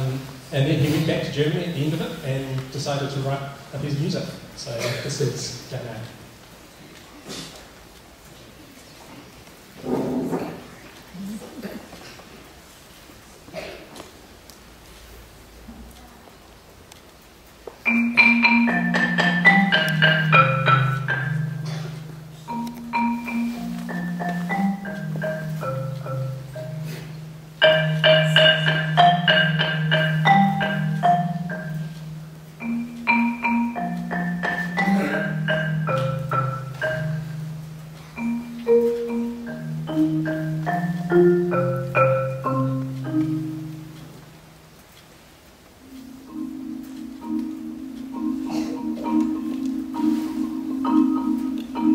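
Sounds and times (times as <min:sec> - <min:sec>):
marimba played with mallets: 0:17.8 - 0:44.7, 0:45.8 - 0:51.9.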